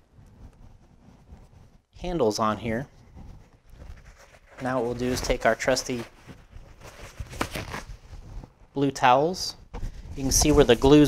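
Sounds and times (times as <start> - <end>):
paper towel rustling: 3.0 - 8.6, 9.9 - 11.0.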